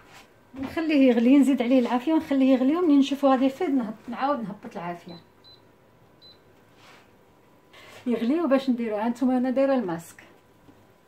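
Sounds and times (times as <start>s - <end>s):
hob touch control beep: 5.1s - 6.4s.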